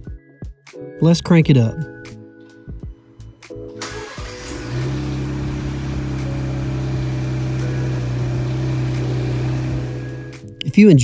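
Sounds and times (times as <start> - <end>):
car engine starting and idling: 3.7 - 10.4.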